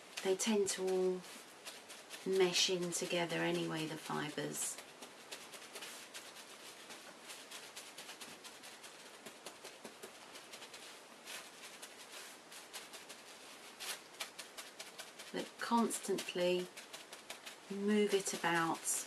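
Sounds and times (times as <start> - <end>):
fingers patting wet wool: 0.0 - 19.0.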